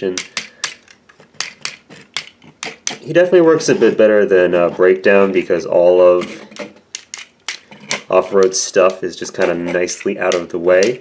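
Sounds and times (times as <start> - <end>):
plastic toy joints clicking: 0.2 - 3.1, 6.4 - 11.0.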